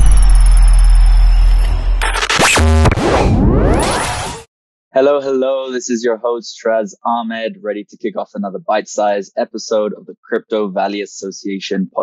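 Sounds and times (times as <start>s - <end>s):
deep electronic rumble: 0.0s - 4.4s.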